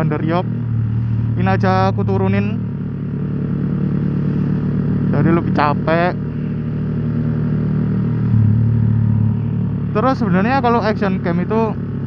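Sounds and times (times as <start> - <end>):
motorcycle engine running: 0.0 - 12.0
road and wind noise: 0.0 - 12.0.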